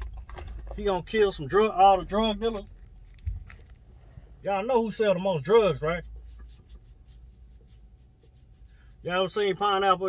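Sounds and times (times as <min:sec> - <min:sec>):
small scratching sounds: 0:05.4 - 0:10.0.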